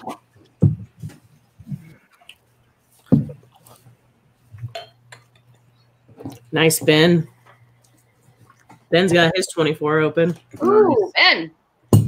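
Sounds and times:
glassware clinking: 4.7 - 5.4.

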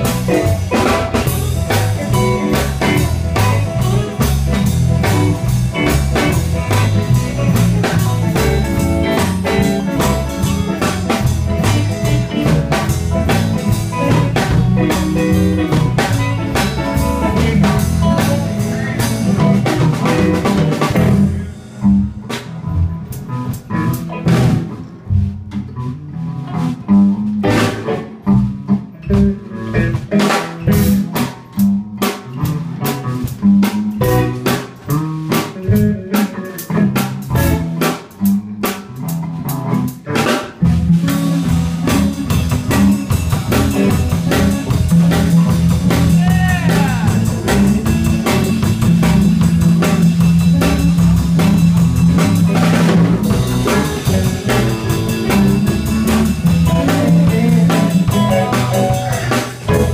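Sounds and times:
blues band playing: 0.0 - 59.9.

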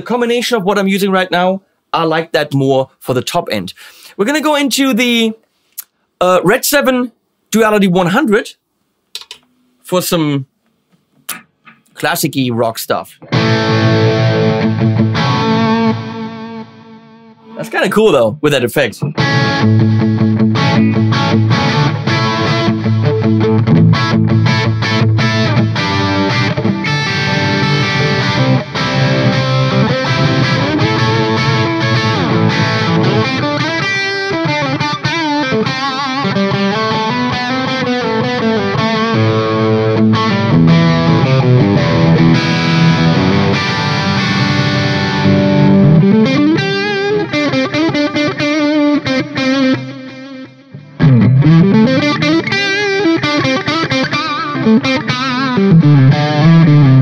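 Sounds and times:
distorted electric guitar riffs: 13.2 - 18.1, 18.9 - 57.0.

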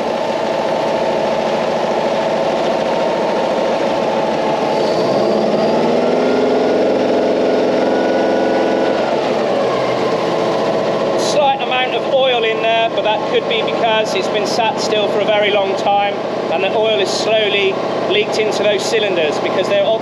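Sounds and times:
engine idling and revving: 0.0 - 20.0.

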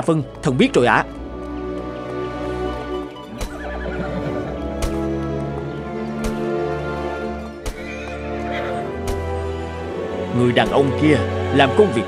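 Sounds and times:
background music: 0.0 - 12.0
horse neighing: 3.2 - 5.7, 7.7 - 9.0.

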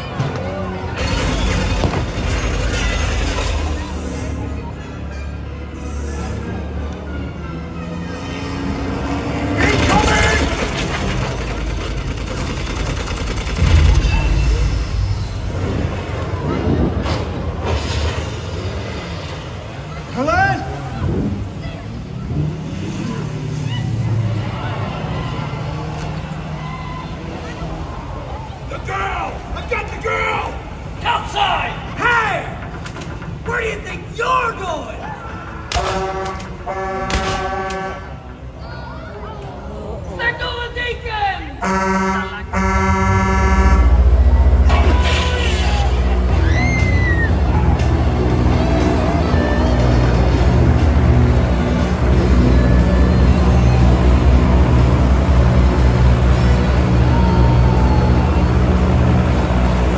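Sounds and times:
pyrotechnic bangs: 9.6 - 19.1
motorboat engine running: 10.4 - 15.4
horn blasts: 35.7 - 38.5, 41.6 - 46.4.

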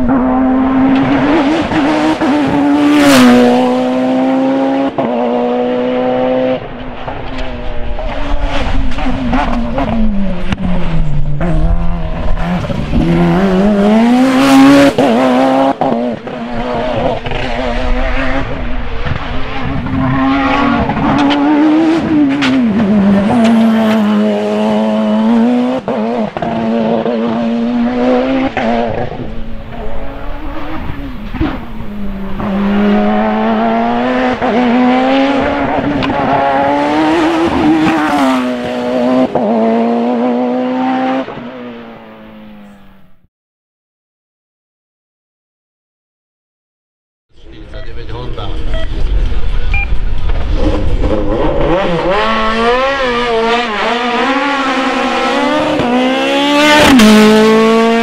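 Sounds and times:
race car engine accelerating: 0.0 - 43.0, 47.5 - 58.0.

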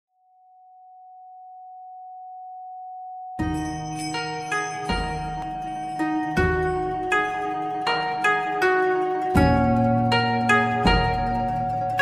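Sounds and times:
music: 3.4 - 12.0.

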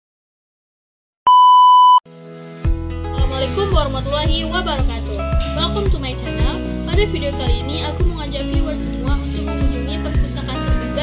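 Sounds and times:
electronic beep tone: 1.3 - 2.0
background music with beat: 2.6 - 11.0.

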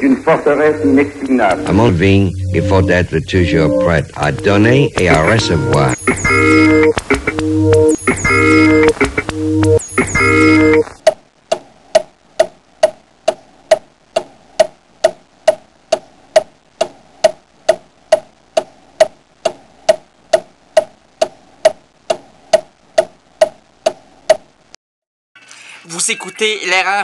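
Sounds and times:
clock ticking with ringing note: 1.3 - 9.8.

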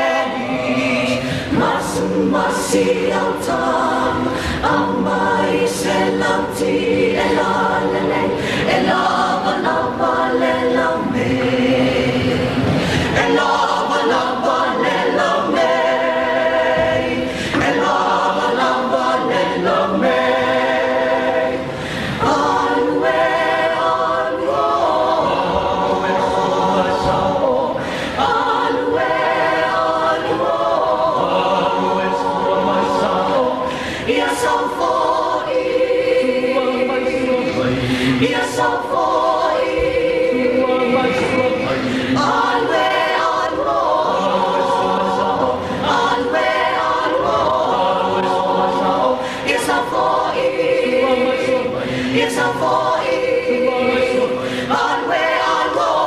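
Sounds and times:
mixed choir singing a cappella: 0.0 - 56.0.

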